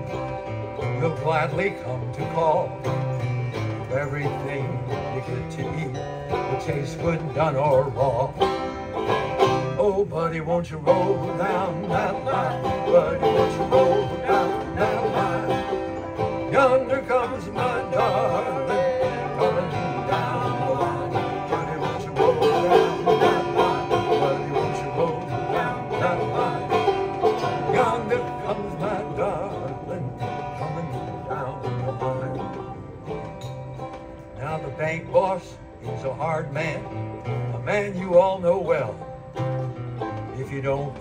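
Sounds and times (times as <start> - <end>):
acoustic guitar: 0.0 - 41.0
banjo: 0.0 - 41.0.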